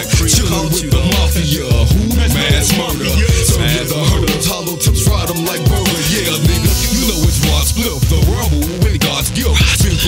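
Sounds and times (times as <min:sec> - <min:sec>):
hip-hop music with vocals: 0:00.0 - 0:10.0.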